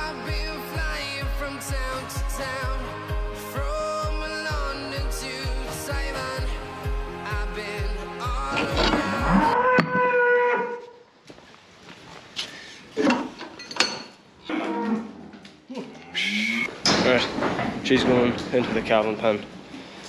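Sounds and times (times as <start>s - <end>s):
background music with a beat: 0.0s - 9.6s
cow mooing: 8.5s - 10.8s.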